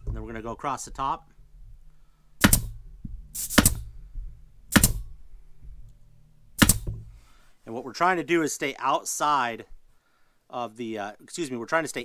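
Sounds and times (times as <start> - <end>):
staple gun firing: 2.4 - 2.8, 3.4 - 3.9, 4.7 - 5.1, 6.6 - 6.9.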